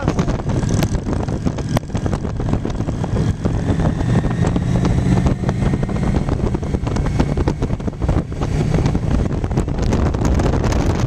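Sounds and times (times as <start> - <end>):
motorcycle engines running: 0.0 - 11.0
wind on microphone: 0.0 - 11.0.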